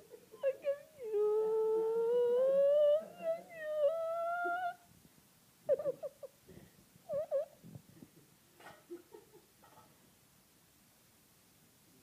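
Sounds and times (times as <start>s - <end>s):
dog whining: 0.4s - 4.8s, 7.1s - 7.6s.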